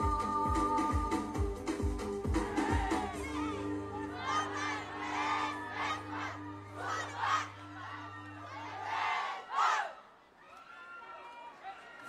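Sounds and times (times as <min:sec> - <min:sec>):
people shouting together: 0:02.3 - 0:10.0.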